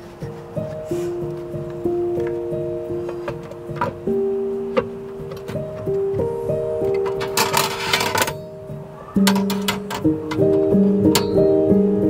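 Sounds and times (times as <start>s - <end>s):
metal parts clinking and rattling: 6.9s - 8.5s, 9.2s - 10.6s.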